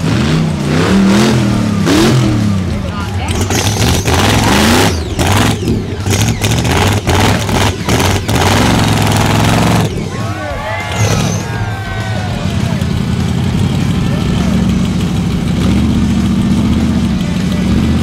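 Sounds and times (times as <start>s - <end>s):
buggy engine revving: 0.0s - 18.0s
rattling tires and chassis: 0.0s - 18.0s
spectators' voices: 0.6s - 18.0s.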